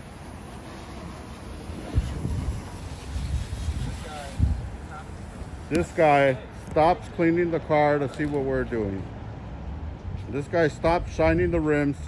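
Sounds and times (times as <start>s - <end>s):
wind buffeting microphone: 0.4s - 5.9s, 9.7s - 12.0s.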